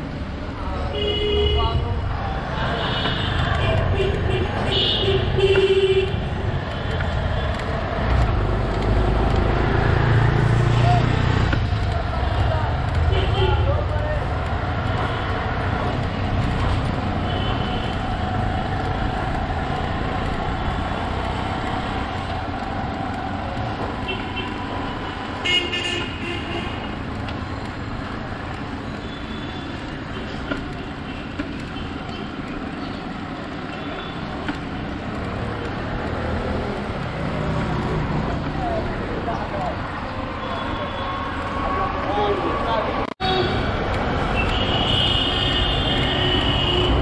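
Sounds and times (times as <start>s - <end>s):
street traffic rumble: 0.0s - 47.0s
vehicle horn toot: 44.4s - 47.0s.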